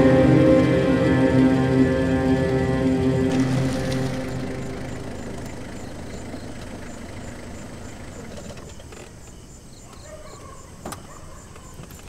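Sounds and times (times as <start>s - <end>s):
sustained soundtrack chords: 0.0s - 8.3s
van engine running: 0.0s - 9.4s.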